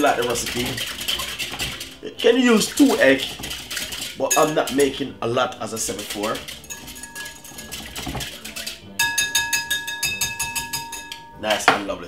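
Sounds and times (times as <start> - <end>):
whisk striking glass bowl: 0.0 - 5.1, 5.7 - 11.9.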